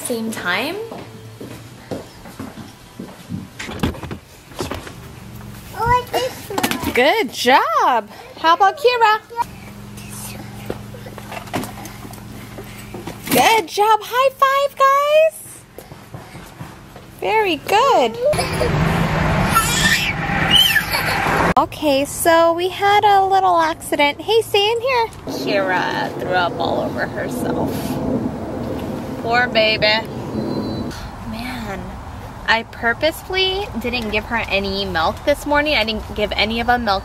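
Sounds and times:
road rumble inside vehicle: 17.9 - 21.7, 24.3 - 32.4.

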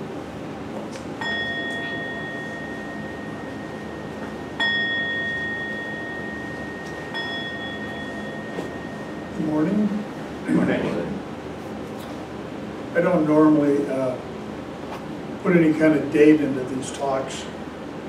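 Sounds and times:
meditation bell ringing: 1.2 - 10.3.

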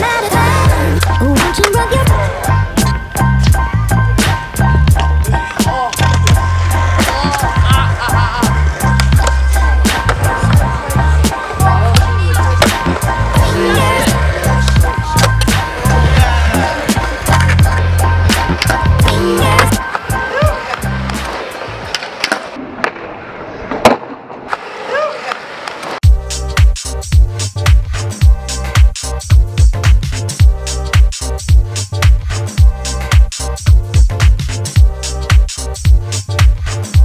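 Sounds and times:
music with heavy bass beat: 0.0 - 21.3, 26.0 - 37.0
skateboard wheels rolling: 0.0 - 26.0
skateboard clacks: 4.2 - 7.6, 8.7 - 23.1.

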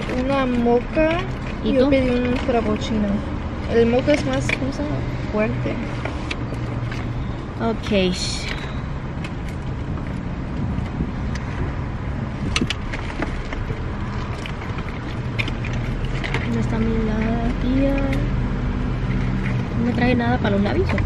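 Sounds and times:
car engine idling: 0.0 - 21.0
person talking: 7.6 - 8.7, 16.4 - 18.3, 19.8 - 21.0
clicks and rustles of handling: 12.4 - 18.3.

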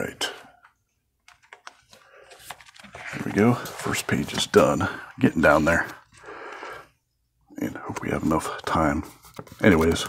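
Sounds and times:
card edges clicking on plastic sleeve: 1.2 - 4.6.

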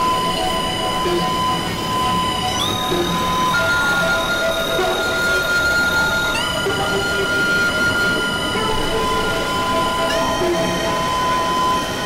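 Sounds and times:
sustained high synthesizer tones: 0.0 - 12.0.

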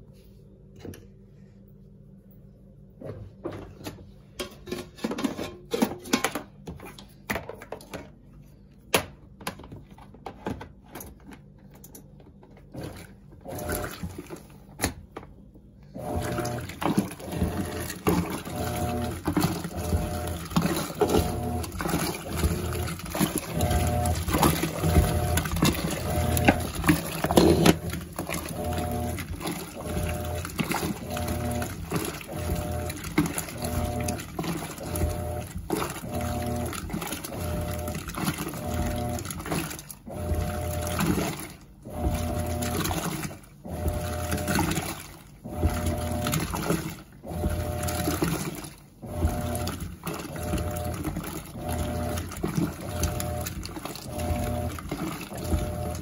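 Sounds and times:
washing machine motor humming: 10.7 - 56.0
water sloshing: 16.0 - 56.0.

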